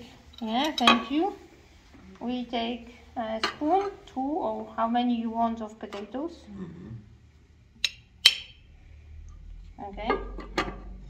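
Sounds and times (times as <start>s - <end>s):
metal spoon clinking on enamel plate: 0.4s - 1.2s, 3.4s - 4.0s.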